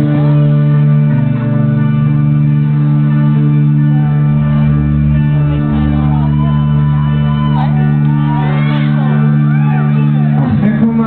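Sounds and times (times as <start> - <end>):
audience shouting and whooping: 3.6 - 10.5.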